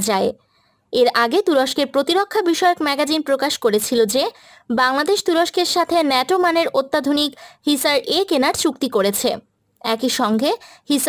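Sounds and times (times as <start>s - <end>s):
woman narrating: 0.0s - 0.4s, 1.0s - 11.0s.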